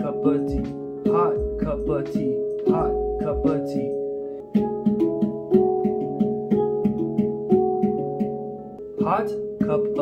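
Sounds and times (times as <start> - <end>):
handpan melody: 0.0 - 10.0.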